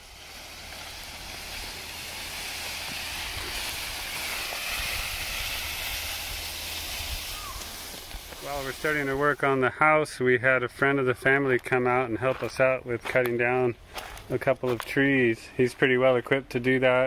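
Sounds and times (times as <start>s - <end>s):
rustling hiss: 0.0s - 10.0s.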